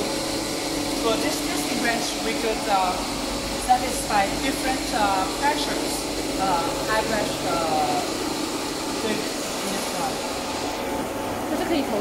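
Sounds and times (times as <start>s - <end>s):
machinery humming and hissing: 0.0s - 12.0s.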